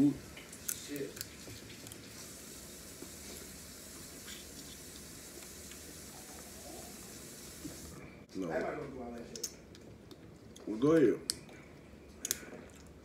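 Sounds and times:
background hiss: 0.0s - 9.6s.

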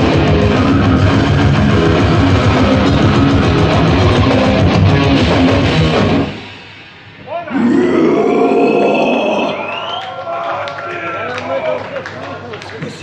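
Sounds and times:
heavy metal band music: 0.0s - 6.6s.

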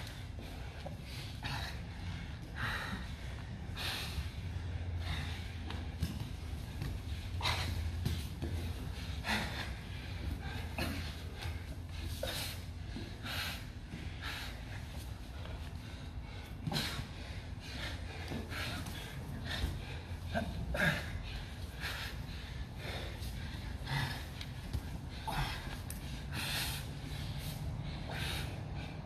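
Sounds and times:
heavy breathing: 0.0s - 29.0s
steady low hum: 0.0s - 29.0s.

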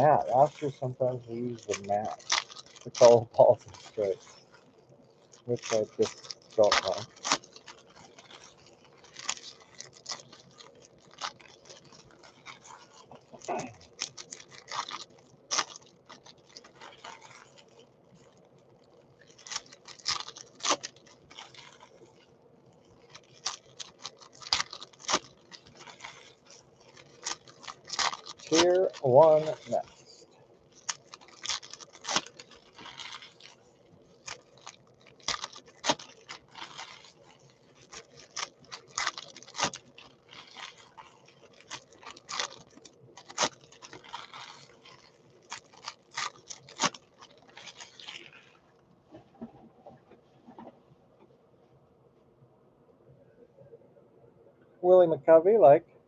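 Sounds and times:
foil wrappers crinkling and tearing: 0.0s - 48.8s.

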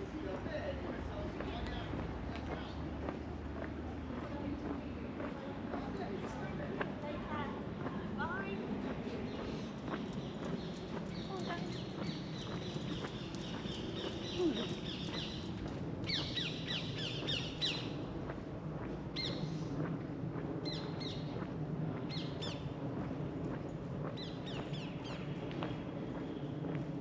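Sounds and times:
songbirds chirping: 0.0s - 19.8s, 20.6s - 27.0s
low background murmur: 0.0s - 27.0s.

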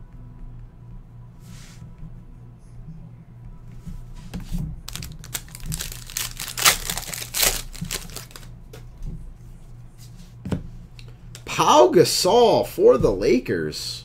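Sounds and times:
steady low hum: 0.0s - 14.0s
foil wrapper crinkling and tearing: 4.9s - 8.5s.

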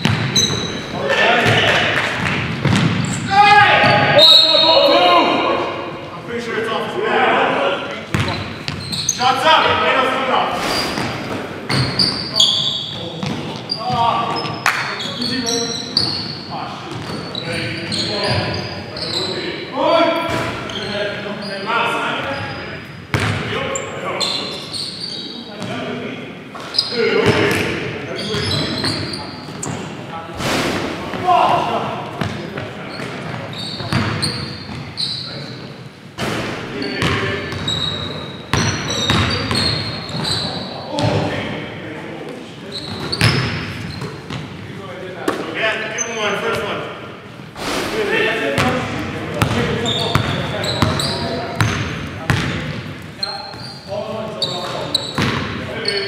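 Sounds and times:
basketball bouncing on hardwood floor: 0.0s - 0.4s, 2.2s - 3.1s
sneakers squeaking: 0.0s - 6.1s, 7.9s - 25.9s, 26.5s - 41.6s, 42.4s - 47.8s, 48.6s - 56.0s
players calling out: 0.0s - 35.6s.

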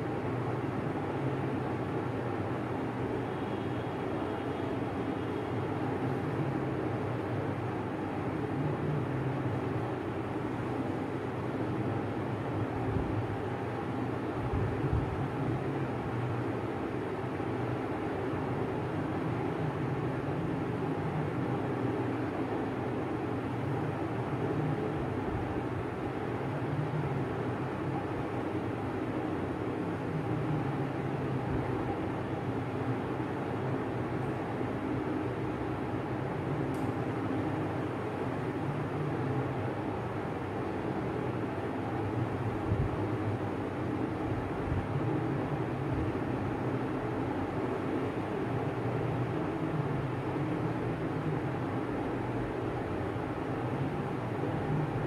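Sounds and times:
low background rumble with hiss: 0.0s - 55.0s.

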